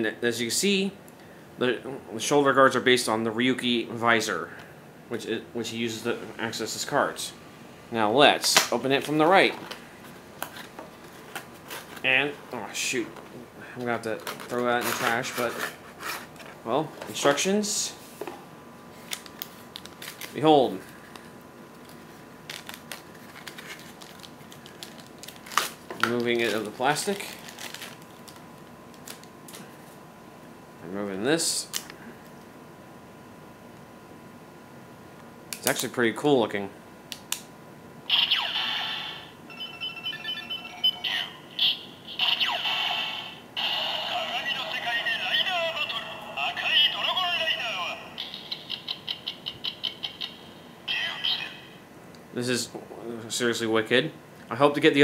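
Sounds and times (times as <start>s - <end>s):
packaging clicks and rustles: 19.0s - 20.4s, 21.1s - 29.6s
toy electronic voice calls: 38.1s - 51.8s
electronic beeping tones: 38.2s - 42.2s.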